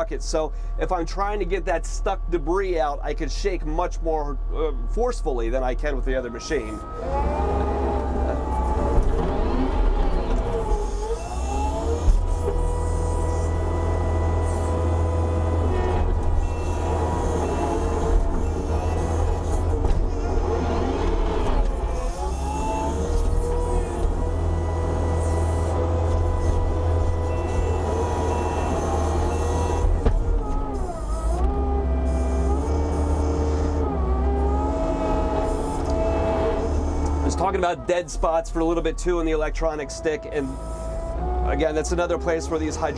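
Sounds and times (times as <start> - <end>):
diesel engine rumble: 0.0 - 42.9
hydraulic machine tones: 6.2 - 38.9, 39.6 - 42.9.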